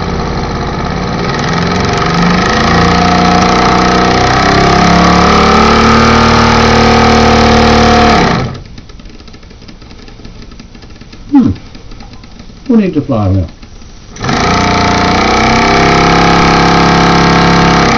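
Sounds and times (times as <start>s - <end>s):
toy steam engine chuffing: 9.1s - 17.9s.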